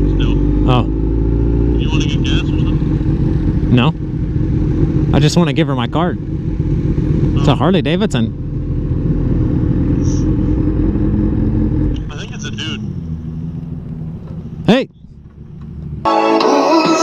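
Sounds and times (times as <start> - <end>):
motorcycle engine rumbling: 0.0 - 17.0
pop song with singing: 16.1 - 17.0.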